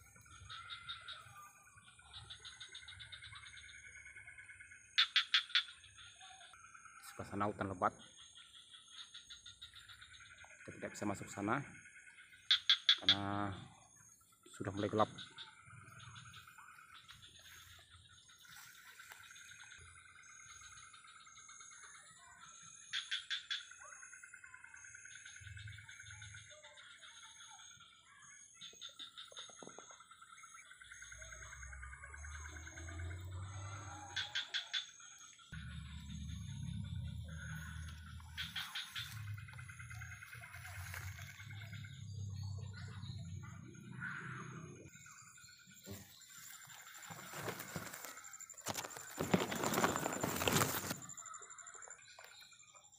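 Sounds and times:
insects buzzing: 27.8s - 52.8s
footsteps through undergrowth: 38.4s - 41.6s, 46.1s - 51.1s.

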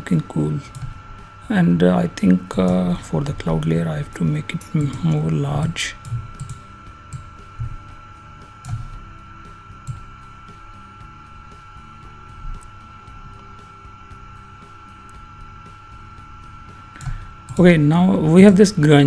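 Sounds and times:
low hum: 0.0s - 19.0s
thin high whine: 0.0s - 19.0s.

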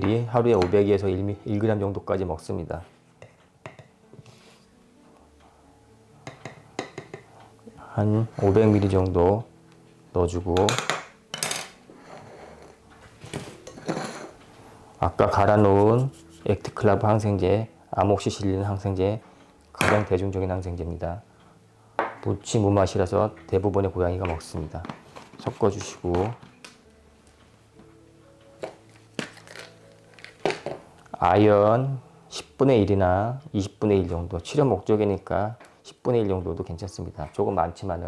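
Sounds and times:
ceramic mortar handling: 28.6s - 30.8s
plastic bottles clicking on countertop: 28.6s - 30.8s.

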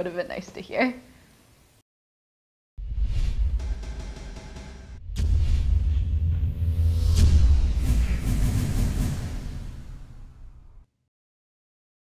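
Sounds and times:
deep rumbling boom: 2.8s - 10.8s.

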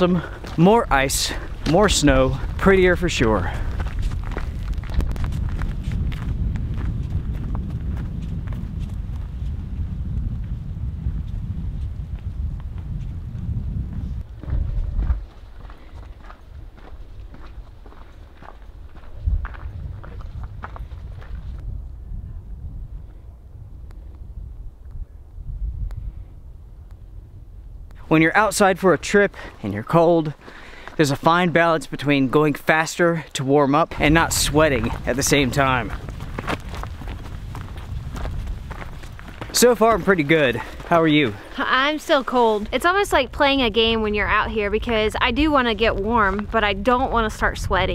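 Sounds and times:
wind rumbling on microphone: 0.0s - 32.5s, 33.9s - 47.9s.

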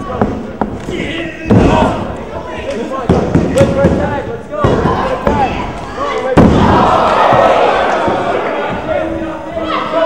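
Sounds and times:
crowd shouting: 4.6s - 10.0s.

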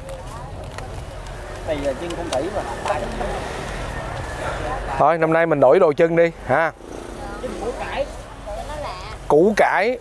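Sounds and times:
indistinct background talking: 0.0s - 10.0s.

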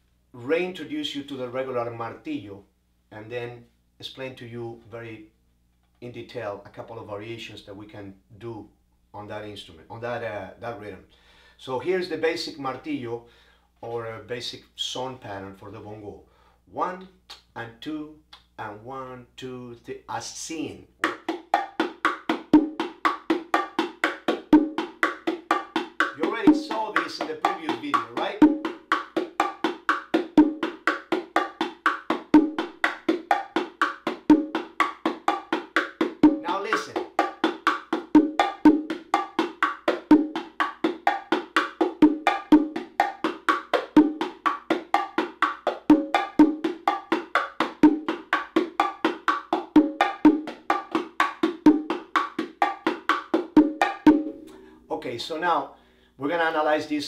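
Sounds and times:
bongos played by hand: 21.0s - 54.7s.

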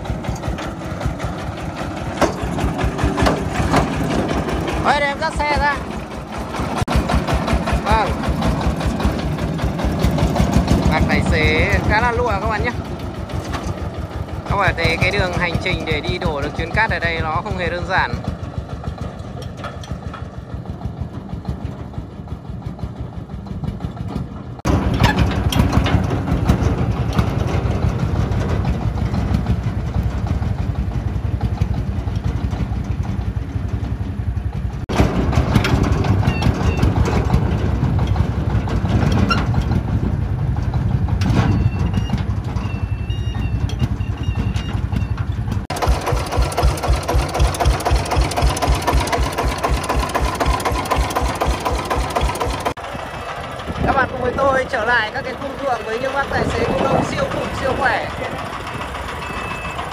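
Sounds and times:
diesel engine chugging: 0.0s - 59.9s.

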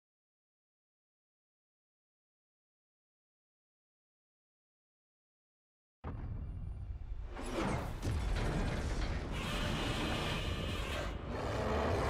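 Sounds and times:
harsh rasping layer: 7.6s - 12.0s.

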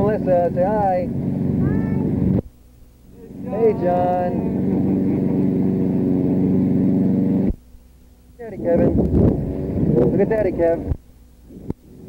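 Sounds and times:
small engine droning: 0.0s - 2.5s, 3.1s - 12.0s.

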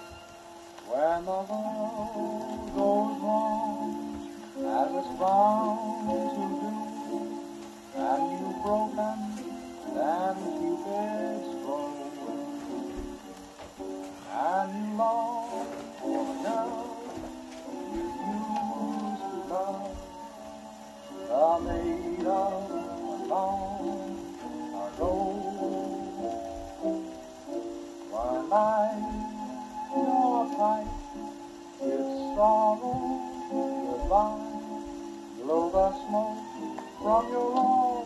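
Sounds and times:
faint record hiss: 0.0s - 38.0s
old phonograph record music: 0.0s - 38.0s.

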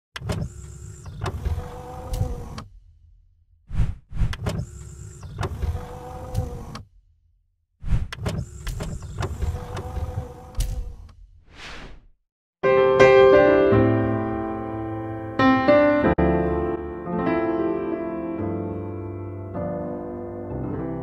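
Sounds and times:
motorised whirr with whine: 0.2s - 2.7s, 4.4s - 6.9s, 8.2s - 11.2s
mechanical clicks and thuds: 0.2s - 2.9s, 3.7s - 7.0s, 7.8s - 11.4s
short whoosh: 11.4s - 12.2s.

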